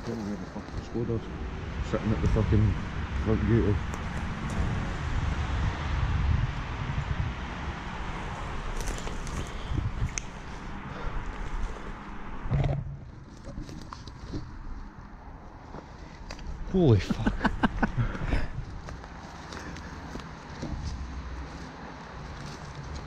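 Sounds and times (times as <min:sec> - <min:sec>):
rustling clothing and undergrowth: 0:00.0 - 0:06.2, 0:07.7 - 0:23.0.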